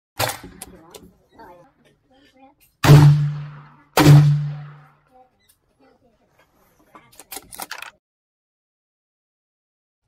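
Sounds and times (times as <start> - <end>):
loud gunshots with ringing tail: 2.8 - 4.9.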